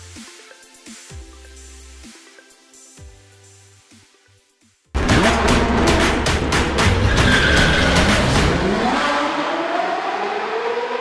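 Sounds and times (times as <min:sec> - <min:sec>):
car engine revving: 0:05.0 - 0:11.0.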